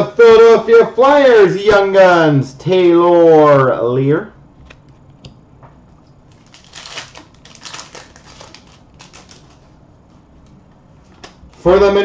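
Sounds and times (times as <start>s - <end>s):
trading cards shuffled by hand: 6.3s - 9.7s.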